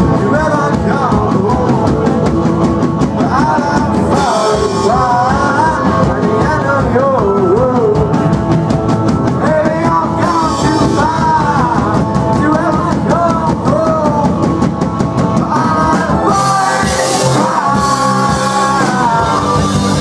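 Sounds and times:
person singing: 0.0 - 20.0
rock band playing live: 0.0 - 20.0.

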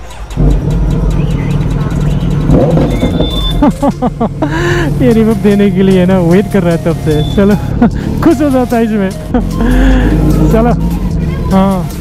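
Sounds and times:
motorcycle engine revving: 0.2 - 12.0.

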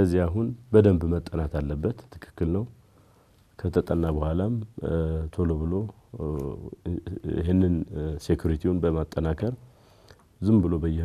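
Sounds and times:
man talking: 0.0 - 2.8, 3.6 - 9.7, 10.4 - 11.0.

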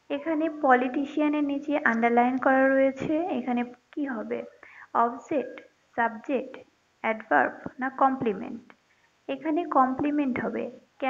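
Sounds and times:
woman talking: 0.1 - 8.7, 9.3 - 10.8.

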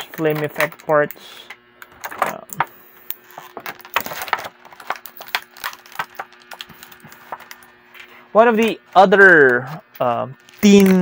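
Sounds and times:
plastic packaging crinkling: 3.2 - 7.8, 10.0 - 11.0.

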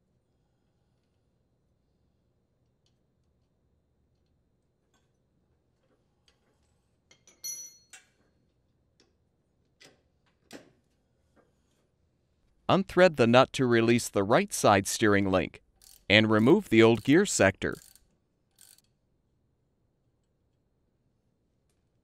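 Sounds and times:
wrench clinking on metal: 7.1 - 8.1.

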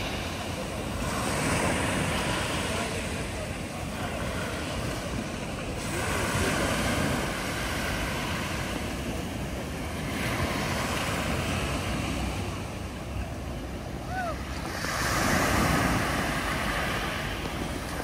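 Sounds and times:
waves washing up pebble beach: 0.0 - 12.8, 14.1 - 18.0
wind on microphone: 0.0 - 18.0.

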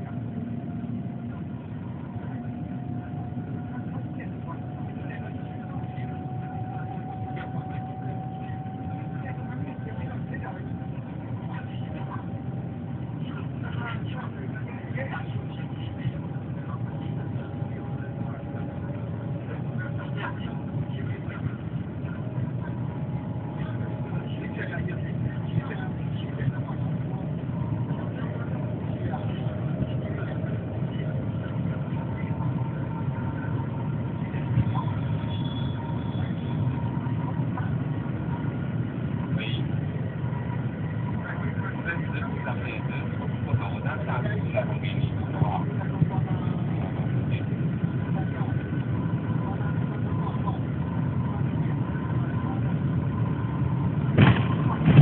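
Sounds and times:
faint whining tones: 0.0 - 55.0
passengers murmuring: 0.0 - 55.0
train cabin low rumble: 0.0 - 55.0.

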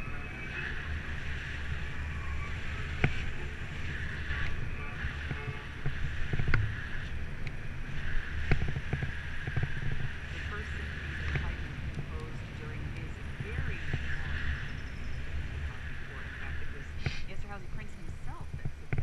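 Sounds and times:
bicycle tyre noise: 0.0 - 17.4
wind rush on microphone: 0.0 - 19.0.

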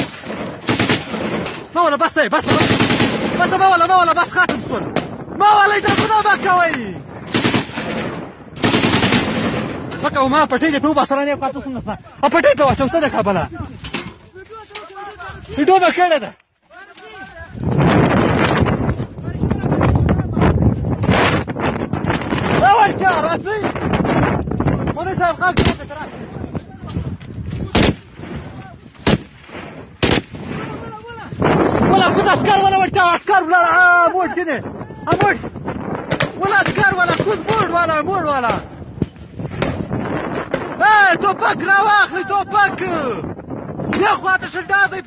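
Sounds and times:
automatic gunfire: 0.0 - 1.5, 2.4 - 3.4, 7.3 - 9.8, 29.0 - 30.6
gunshots: 0.0 - 10.2, 25.5 - 26.0, 27.6 - 32.2, 36.0 - 37.8.

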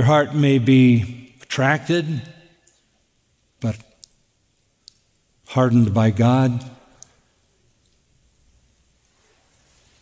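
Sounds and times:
faint sharp clicks: 4.8 - 5.1.

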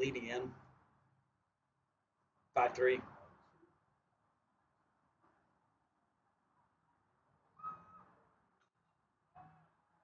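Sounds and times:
short whistle-like tone: 7.5 - 8.3.

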